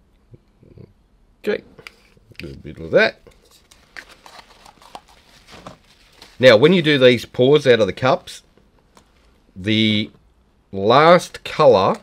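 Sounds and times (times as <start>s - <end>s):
plastic cups clicking and crinkling: 1.9s - 6.4s.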